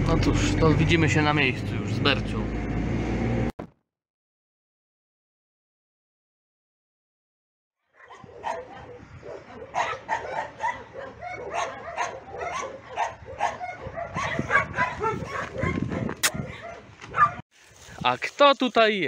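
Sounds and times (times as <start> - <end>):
dogs barking: 7.9 - 17.4.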